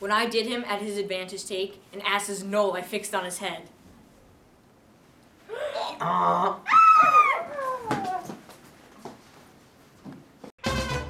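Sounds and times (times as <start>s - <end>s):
young voices imitating donkey bray: 5.5s - 8.4s.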